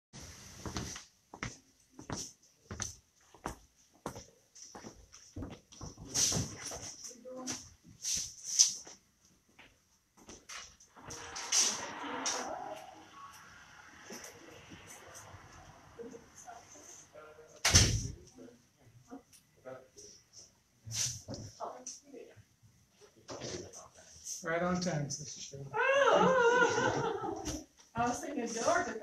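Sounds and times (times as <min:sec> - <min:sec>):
loud thump: 0:17.6 - 0:18.2.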